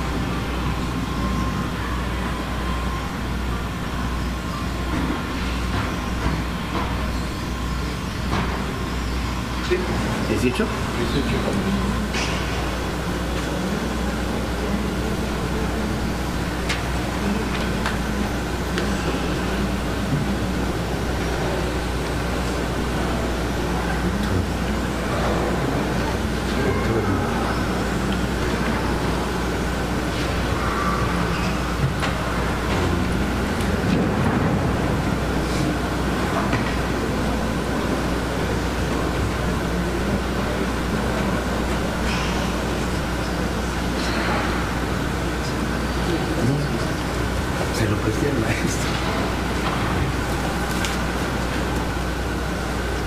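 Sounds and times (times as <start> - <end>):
faint indistinct voices: 0.0 - 53.0
low electrical hum: 0.0 - 53.0.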